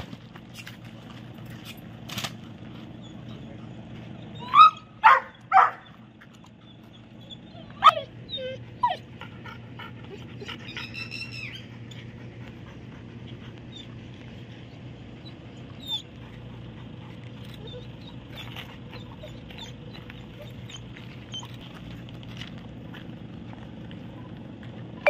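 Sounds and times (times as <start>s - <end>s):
dogs barking and yelping: 2.6s - 21.9s
dog whining: 3.0s - 21.6s.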